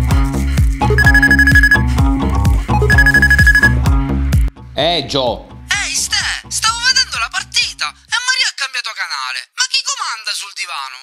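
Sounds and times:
upbeat background music: 0:00.0 - 0:08.0
phone ringing: 0:00.9 - 0:01.9, 0:02.8 - 0:03.8.

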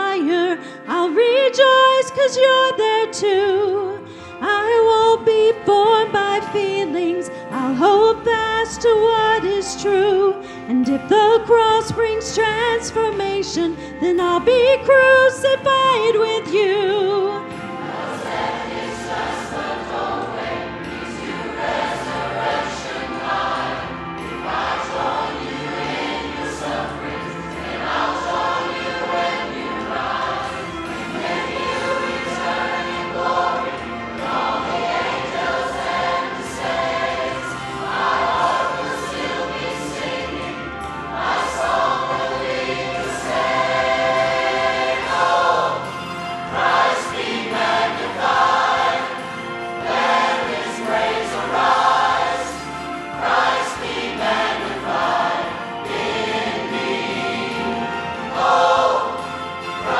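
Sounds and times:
choir singing worship song: 0:00.0 - 0:59.9.

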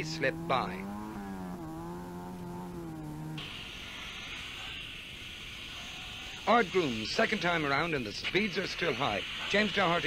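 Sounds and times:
rally car engine: 0:00.0 - 0:04.8
steady hiss: 0:03.4 - 0:10.0.

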